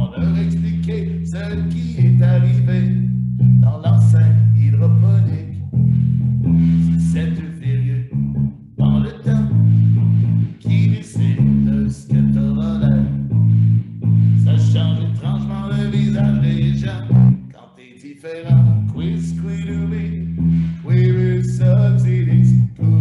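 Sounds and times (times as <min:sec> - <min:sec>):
man singing: 0:00.0 - 0:05.6, 0:06.7 - 0:08.1, 0:08.8 - 0:09.6, 0:10.6 - 0:13.2, 0:14.4 - 0:23.0
electric guitar: 0:00.0 - 0:17.5
heavy bass line: 0:00.0 - 0:17.6, 0:18.5 - 0:23.0.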